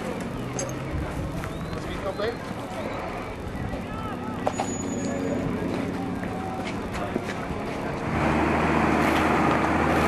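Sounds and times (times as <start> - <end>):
voices: 0.0 - 8.6
vehicle engine running: 0.0 - 10.0.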